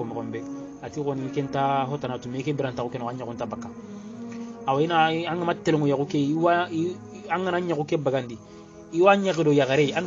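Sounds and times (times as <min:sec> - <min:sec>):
low buzzing drone: 0:00.0 - 0:10.0
man chanting: 0:00.0 - 0:10.0.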